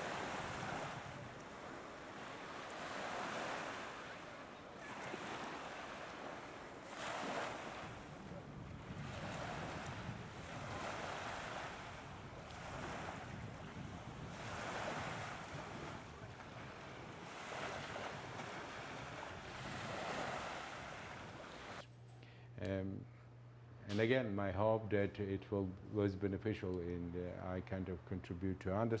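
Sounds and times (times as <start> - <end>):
small waves washing onto beach: 0.0 - 21.8.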